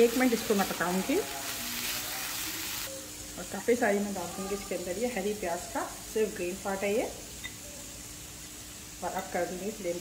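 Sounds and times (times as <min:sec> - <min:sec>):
onions sizzling in a pan: 0:00.0 - 0:10.0.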